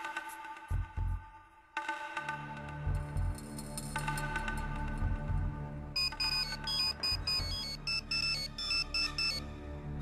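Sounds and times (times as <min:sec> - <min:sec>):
mobile phone ringtone beeping: 0:06.0 - 0:09.5.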